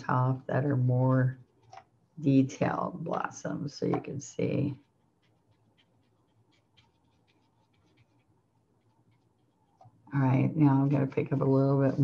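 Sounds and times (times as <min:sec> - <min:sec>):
paintbrush dabbing ticks: 0:03.9 - 0:10.0.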